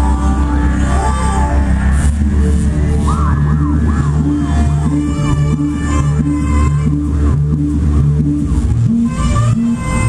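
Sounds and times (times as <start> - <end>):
deep bass line: 0.0 - 10.0.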